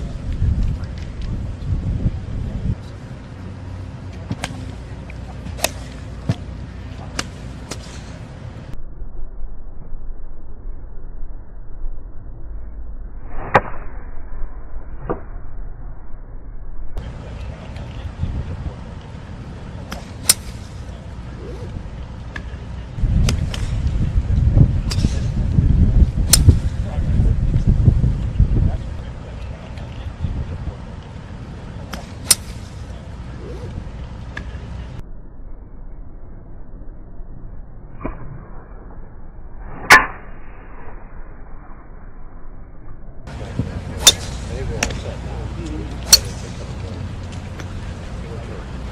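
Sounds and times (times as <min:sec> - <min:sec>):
wind rumble on microphone: 0:00.0 - 0:35.0, 0:41.4 - 0:48.9
golf club swish: 0:04.2 - 0:08.3
golf club striking ball: 0:05.5 - 0:06.4, 0:19.9 - 0:20.8, 0:23.2 - 0:24.0, 0:24.8 - 0:25.5, 0:26.2 - 0:26.8, 0:31.9 - 0:32.8, 0:44.0 - 0:45.2, 0:45.9 - 0:47.8.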